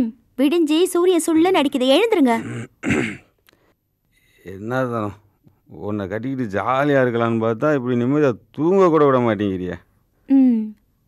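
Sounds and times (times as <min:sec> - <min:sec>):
man clearing throat: 0:02.4 - 0:03.4.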